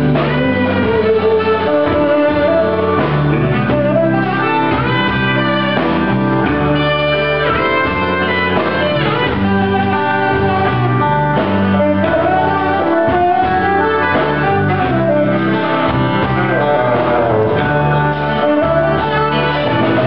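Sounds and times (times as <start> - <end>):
rock band playing: 0.0 - 20.0
saxophone melody: 0.0 - 20.0.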